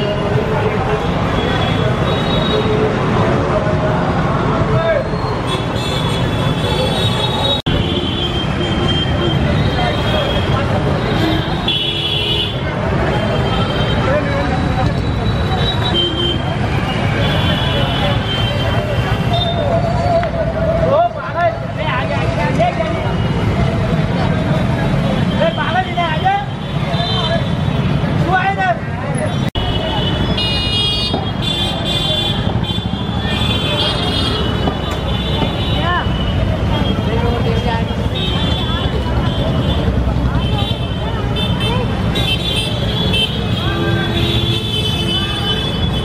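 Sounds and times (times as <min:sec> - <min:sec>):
motor traffic rumble: 0:00.0 - 0:46.0
voices of passers-by: 0:00.0 - 0:46.0.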